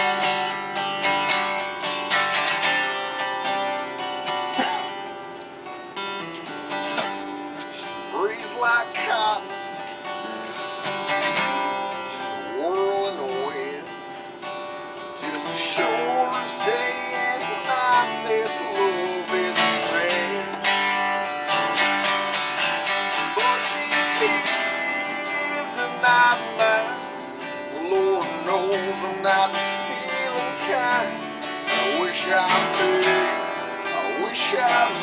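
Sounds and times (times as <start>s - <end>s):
acoustic guitar strumming: 0.0s - 35.0s.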